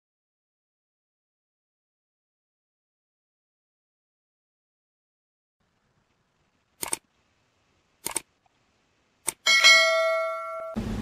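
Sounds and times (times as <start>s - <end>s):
short sharp clicks: 6.8s - 7.0s, 8.0s - 8.3s
bright bell-like chime: 9.5s - 10.8s.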